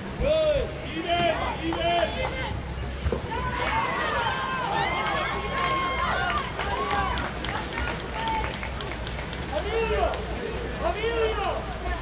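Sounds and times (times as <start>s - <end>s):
people shouting and calling out: 0.2s - 8.6s, 9.5s - 12.0s.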